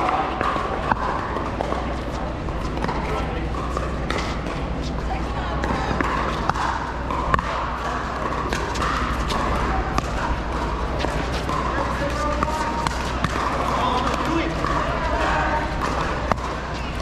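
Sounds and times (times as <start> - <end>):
people chatting: 0.0 - 17.0
paddles hitting plastic ball: 5.6 - 17.0.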